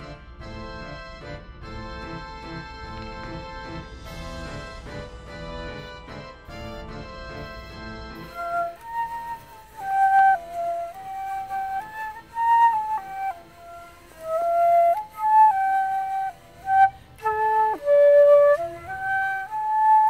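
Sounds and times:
solo flute melody: 0:06.6 - 0:20.0.

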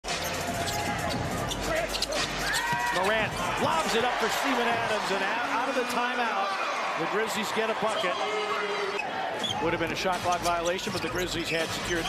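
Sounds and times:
arena crowd noise: 0:00.1 - 0:12.0.

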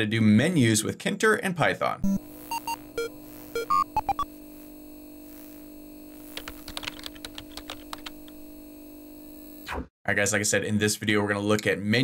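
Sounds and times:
rapid keyboard typing: 0:06.4 - 0:08.3.

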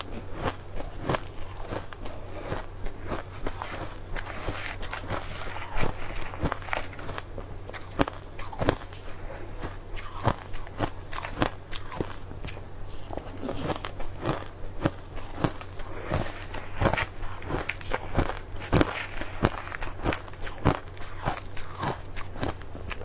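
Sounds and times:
crushed ice being chewed: 0:00.0 - 0:23.0
low hum: 0:00.0 - 0:23.0.

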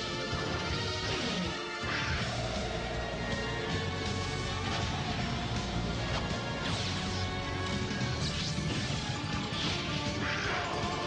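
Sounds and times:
dramatic cartoon music: 0:00.0 - 0:11.0.

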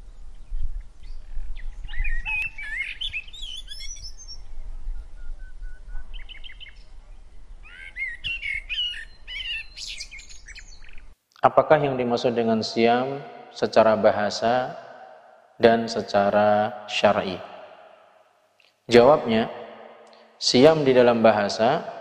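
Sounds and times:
small birds chirping: 0:00.0 - 0:11.2.

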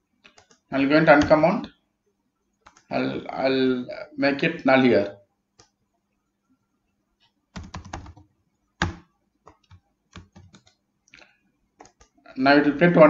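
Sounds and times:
keyboard typing: 0:00.2 - 0:01.5, 0:02.6 - 0:02.9, 0:07.5 - 0:10.8, 0:11.8 - 0:12.2.

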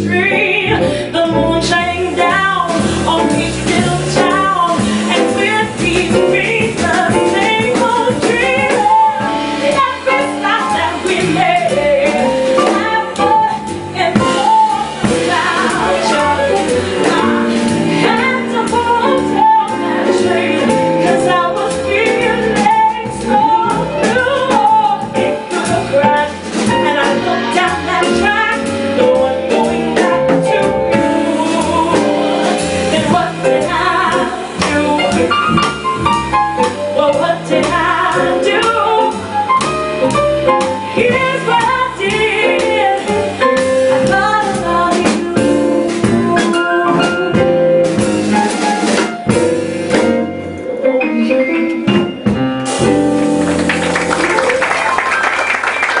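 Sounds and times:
woman singing jazz: 0:00.0 - 0:54.4
drum kit: 0:00.0 - 0:56.0
upright bass: 0:00.0 - 0:56.0.

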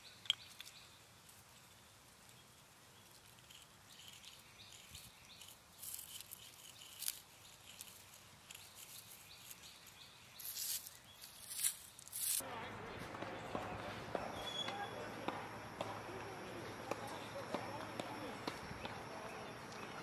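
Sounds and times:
chalk scraping on asphalt: 0:03.2 - 0:12.4.

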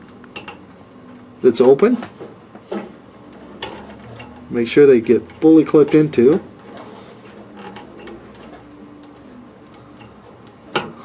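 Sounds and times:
faint ticks and handling noise: 0:03.2 - 0:10.7.

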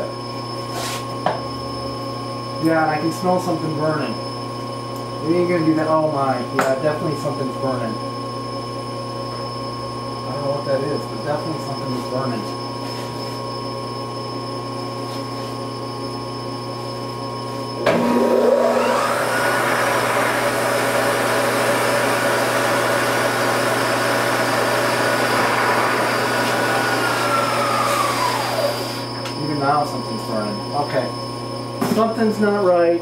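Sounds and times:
electrical hum: 0:00.0 - 0:33.0
milling spindle whine: 0:00.0 - 0:33.0.

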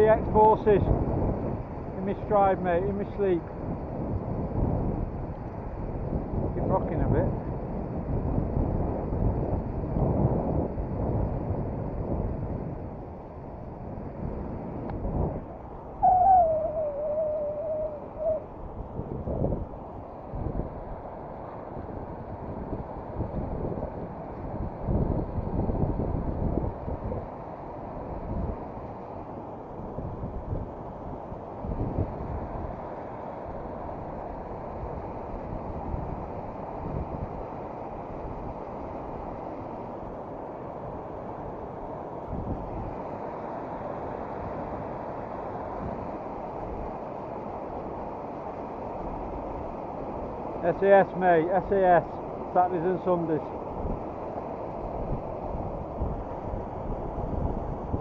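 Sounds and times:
wind buffeting microphone: 0:00.0 - 0:27.4, 0:48.9 - 0:58.0
hooting tone: 0:16.0 - 0:18.5.

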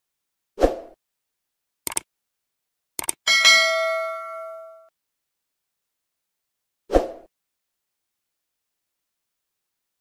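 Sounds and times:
mouse clicks: 0:01.9 - 0:02.1, 0:03.0 - 0:03.2
notification bell ding: 0:03.3 - 0:04.9.

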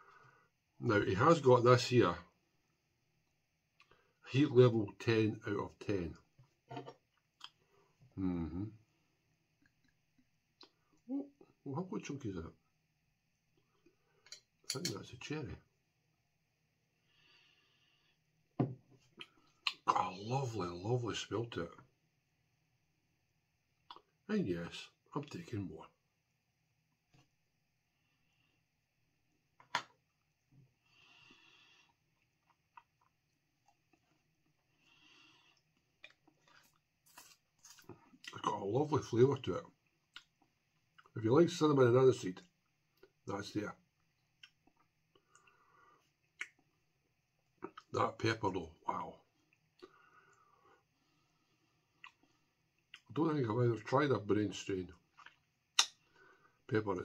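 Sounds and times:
soft breaths: 0:16.9 - 0:18.3, 0:30.7 - 0:32.3, 0:34.5 - 0:38.2, 0:49.8 - 0:52.6
small mouth clicks: 0:46.3 - 0:46.7, 0:52.0 - 0:52.3, 0:55.2 - 0:56.0
lip smack: 0:55.2 - 0:56.0.

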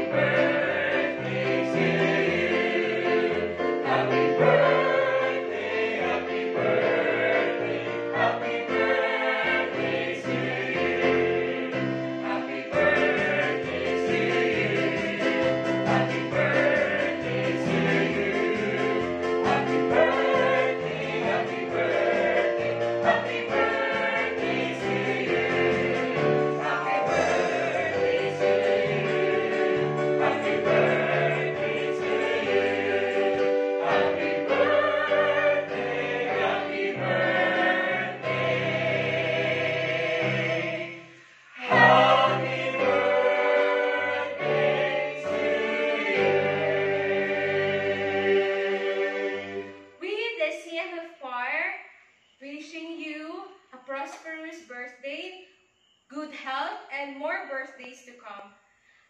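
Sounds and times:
choir singing in harmony: 0:00.0 - 0:50.0.

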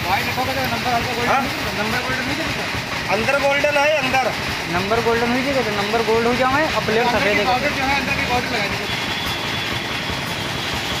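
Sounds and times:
machine running with high whine: 0:00.0 - 0:11.0.

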